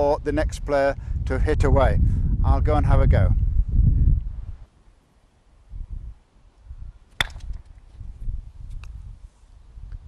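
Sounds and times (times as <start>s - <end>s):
croquet mallet striking ball: 7.2s - 7.7s.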